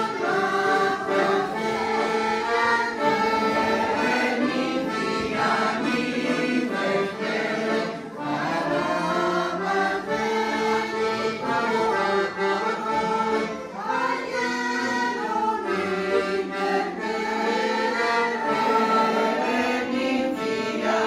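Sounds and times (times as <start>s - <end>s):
women's choir singing: 0.0s - 21.0s.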